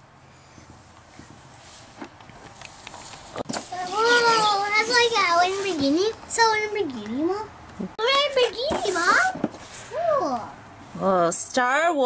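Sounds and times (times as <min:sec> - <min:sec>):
child's excited high-pitched exclamation: 0:03.8 - 0:05.6, 0:08.2 - 0:10.6.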